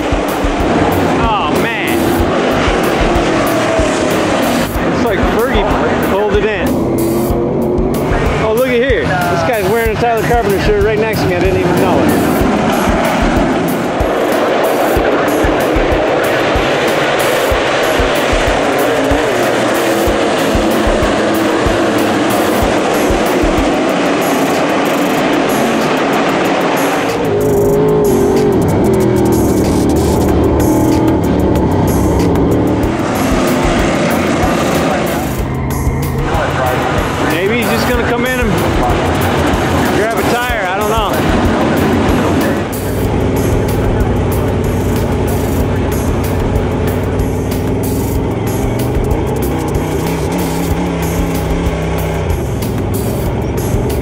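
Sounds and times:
music: 0:00.0 - 0:54.0
race car engines passing: 0:00.0 - 0:54.0.

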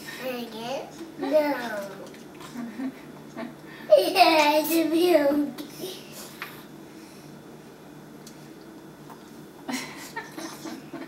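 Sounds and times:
person chuckling softly: 0:09.6 - 0:11.0.

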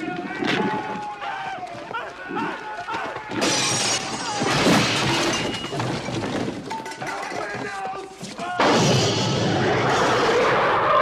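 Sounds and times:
loud shattering crash: 0:03.4 - 0:06.4, 0:08.6 - 0:10.3.

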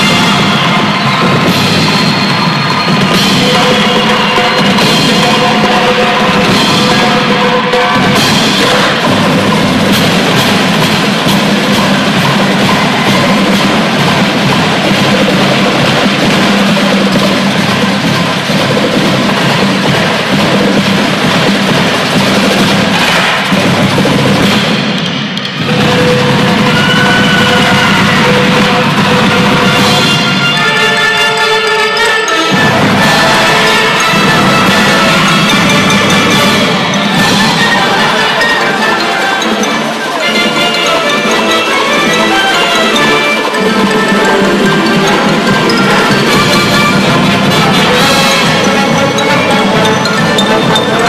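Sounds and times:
loud drum and percussion: 0:00.0 - 0:51.0
marching band playing: 0:00.0 - 0:51.0.

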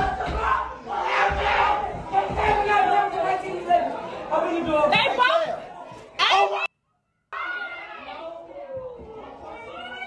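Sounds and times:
people yelling and screaming: 0:00.0 - 0:03.4, 0:07.3 - 0:10.0.

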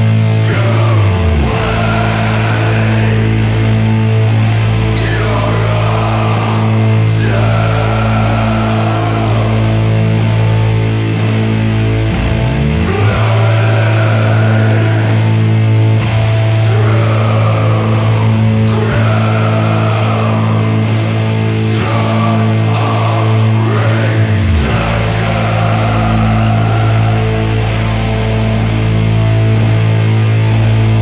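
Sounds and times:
distorted guitars and bass chord: 0:00.0 - 0:31.0
heavy metal music: 0:00.0 - 0:31.0.

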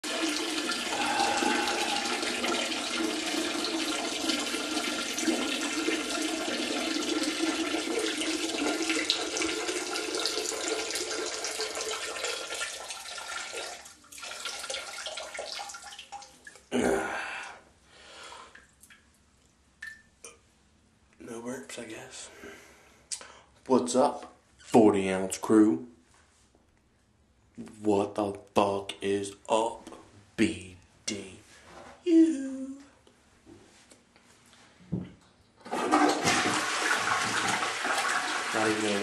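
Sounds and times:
water running: 0:00.0 - 0:16.7, 0:35.7 - 0:39.0.

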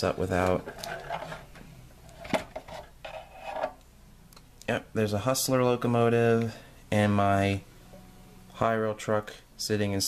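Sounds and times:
plastic parts knocking and rubbing: 0:00.6 - 0:03.8.

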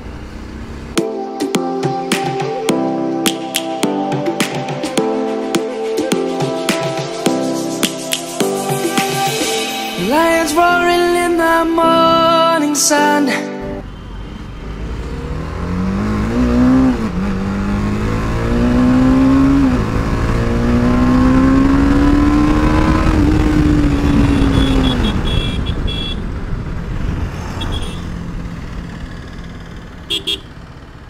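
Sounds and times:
motorcycle engine accelerating: 0:00.0 - 0:01.0, 0:14.2 - 0:31.0
short horn toots: 0:23.9 - 0:26.2.

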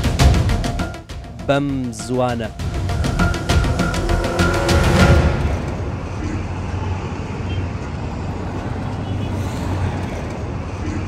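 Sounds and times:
music: 0:00.0 - 0:06.1
traffic noise: 0:01.0 - 0:11.0.

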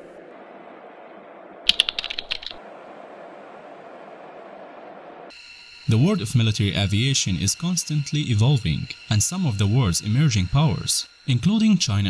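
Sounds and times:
sharp clicks: 0:01.7 - 0:02.6.

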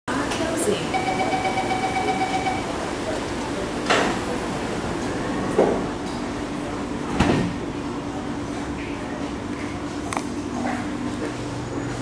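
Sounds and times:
voices: 0:00.1 - 0:05.2
train equipment hum: 0:00.1 - 0:07.0
door warning tone: 0:00.8 - 0:03.0.

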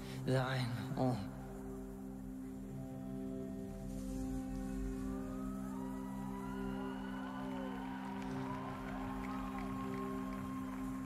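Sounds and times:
sustained keyboard chord drone: 0:00.0 - 0:11.0.

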